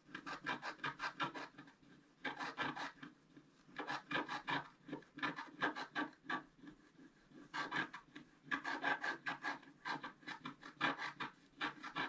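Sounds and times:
stylus scratching paper: 0:00.0 - 0:12.0.

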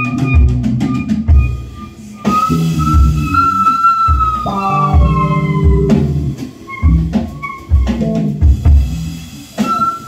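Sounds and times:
electric bass notes: 0:00.0 - 0:09.6
high note sliding downward: 0:02.3 - 0:07.6
low drum thumps: 0:04.2 - 0:09.2.

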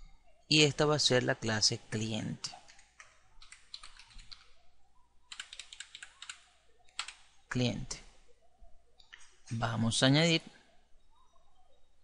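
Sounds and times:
typing on computer keyboard: 0:02.7 - 0:04.5, 0:05.3 - 0:07.3.

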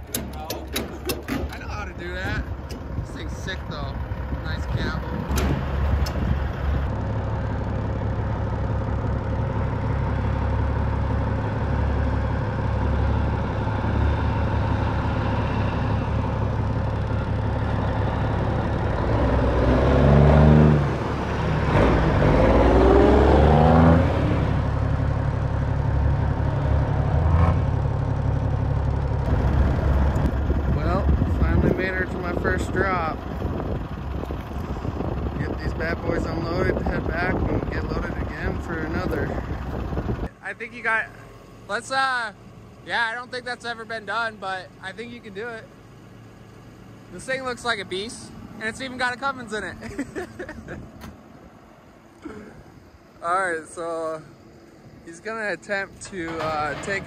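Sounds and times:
truck engine revving: 0:00.0 - 0:40.3, 0:55.1 - 0:57.0
diesel truck engine droning: 0:00.0 - 0:57.0.

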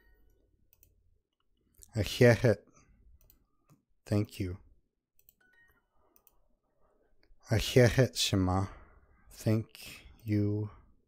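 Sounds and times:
computer mouse clicks: 0:00.7 - 0:01.5, 0:03.2 - 0:03.8, 0:05.2 - 0:06.4.

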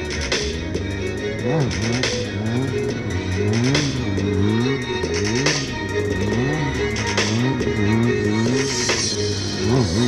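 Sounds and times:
motorcycle engine revving: 0:00.0 - 0:10.0
music playing: 0:00.0 - 0:10.0.

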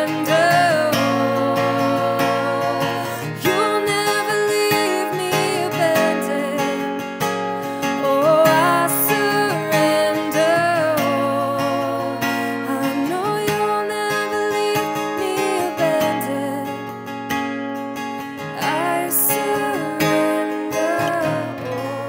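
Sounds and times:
wordless singing: 0:00.0 - 0:06.8, 0:08.0 - 0:16.7, 0:18.6 - 0:22.0
acoustic guitar strumming: 0:00.0 - 0:22.0.

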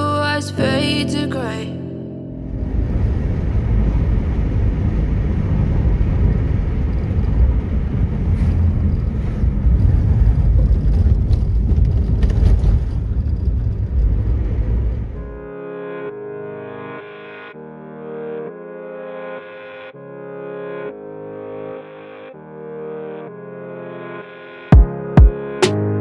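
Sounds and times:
car road noise rumble: 0:02.4 - 0:15.4.

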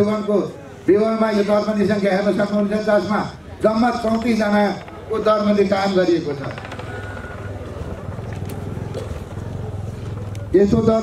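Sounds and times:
small engine running: 0:03.9 - 0:10.6.

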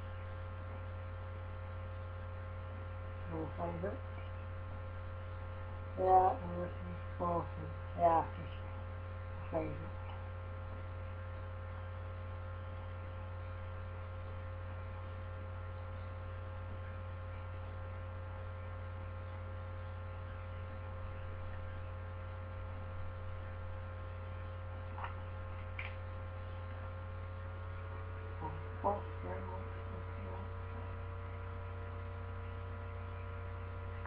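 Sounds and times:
electrical mains hum: 0:00.0 - 0:34.0.

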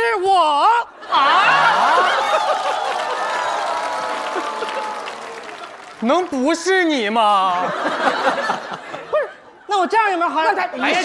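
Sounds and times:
audience laughing: 0:01.0 - 0:03.5, 0:04.1 - 0:05.8, 0:07.5 - 0:09.6
audience applauding: 0:01.4 - 0:08.6.

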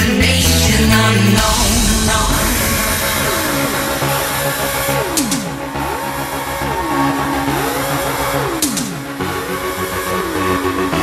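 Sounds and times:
electronic dance music: 0:00.5 - 0:07.3.

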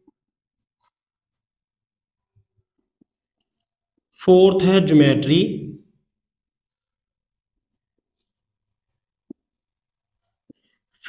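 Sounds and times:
marker writing on a whiteboard: 0:00.0 - 0:04.7, 0:05.9 - 0:11.0.

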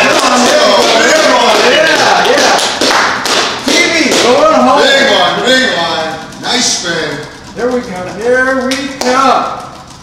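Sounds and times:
people talking: 0:00.0 - 0:02.8, 0:03.6 - 0:09.7
prize wheel pointer clicking: 0:03.7 - 0:10.0.

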